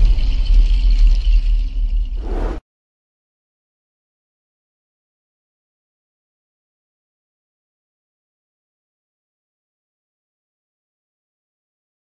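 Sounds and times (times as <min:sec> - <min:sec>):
deep cinematic rumble: 0:02.0 - 0:02.6.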